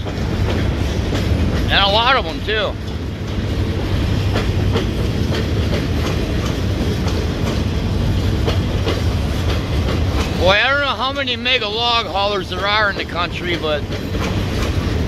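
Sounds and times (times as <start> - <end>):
train wheels rumbling on rail: 0.0 - 15.0
wheels clicking over rail joints: 0.0 - 15.0
man talking: 1.7 - 2.8, 10.4 - 13.8.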